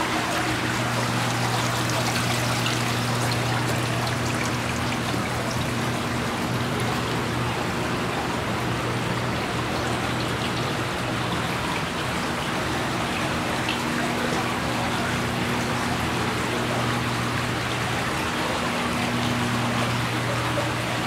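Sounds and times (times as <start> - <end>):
steady low hum: 0.0 - 21.0
water trickling into basins: 0.0 - 21.0.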